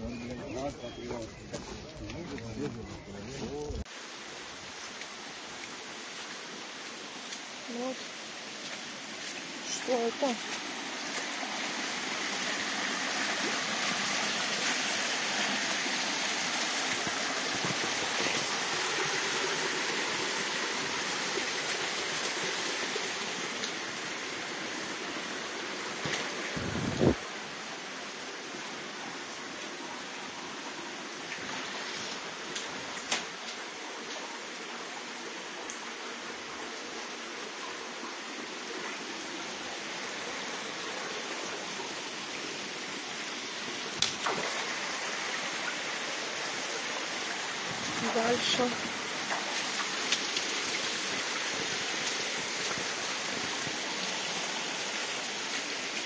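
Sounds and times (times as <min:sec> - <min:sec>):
rain rushing: 0:00.0 - 0:56.0
running floodwater: 0:00.0 - 0:56.0.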